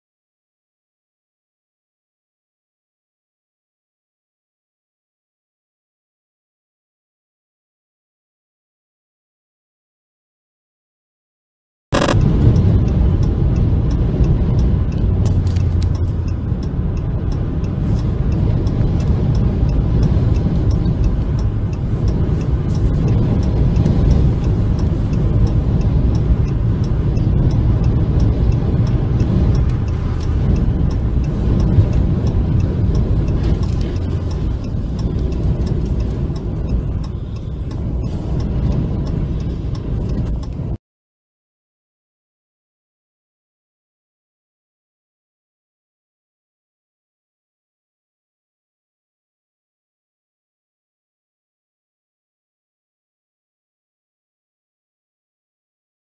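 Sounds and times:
faint regular ticking: 12.0 - 40.8
road noise rumble: 12.0 - 40.8
wind buffeting moving vehicle: 12.0 - 40.8.

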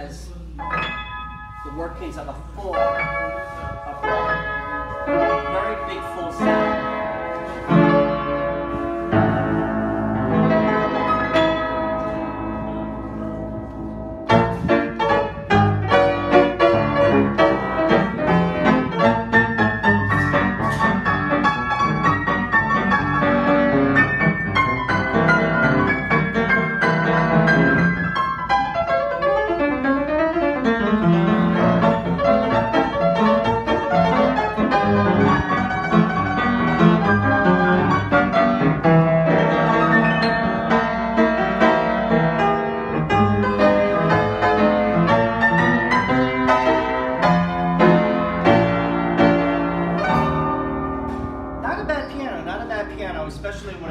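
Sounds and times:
upright piano chords and runs: 0.0 - 53.9.

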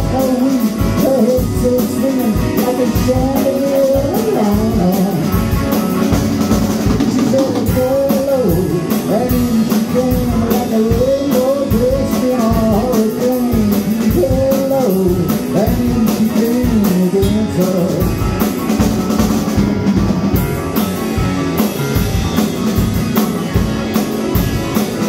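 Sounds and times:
drum and cymbal hits: 0.0 - 25.0
electric guitar bending melody: 0.0 - 25.0
live rock band playing: 0.0 - 25.0.

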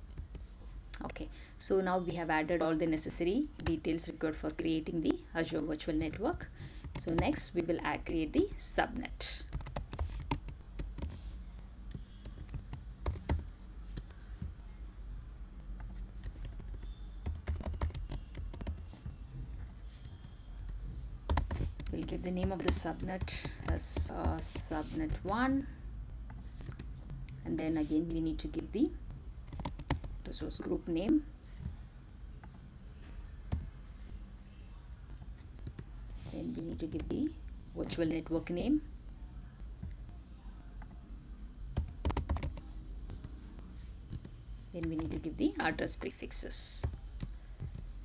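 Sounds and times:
typing on a keyboard: 9.5 - 11.2, 11.9 - 14.1, 15.8 - 20.2, 21.2 - 25.3, 29.4 - 30.2, 41.7 - 43.3, 44.1 - 45.2.

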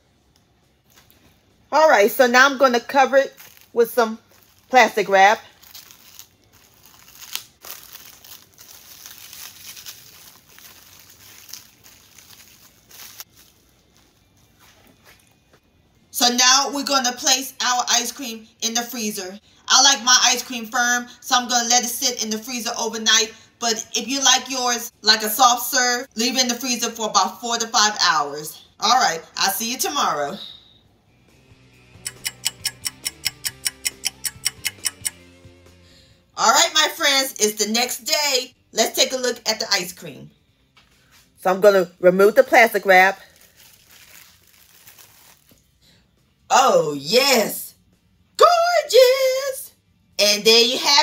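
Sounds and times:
plastic wrap crinkling: 3.0 - 15.6, 42.4 - 45.8
clock ticking fast: 32.0 - 35.2.

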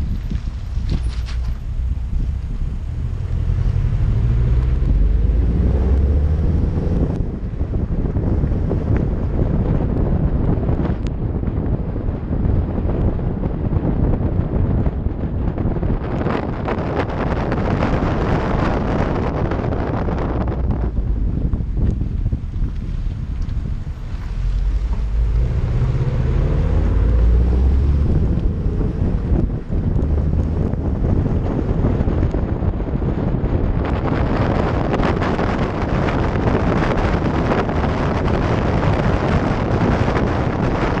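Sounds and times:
car engine accelerating: 0.0 - 10.8, 16.1 - 41.0
wind buffeting microphone: 0.0 - 41.0.

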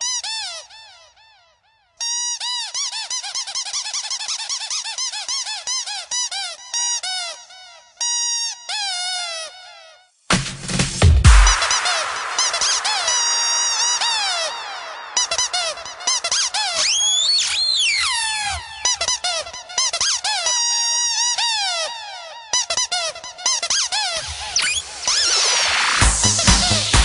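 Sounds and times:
squeaky rubber duck samples: 2.0 - 7.4, 15.1 - 27.0
rising synth swell: 11.3 - 19.0, 24.2 - 27.0.

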